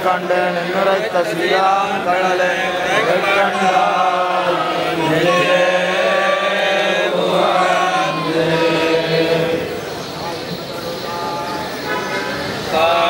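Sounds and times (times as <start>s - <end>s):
group chanting in unison: 0.0s - 10.0s, 12.7s - 13.0s.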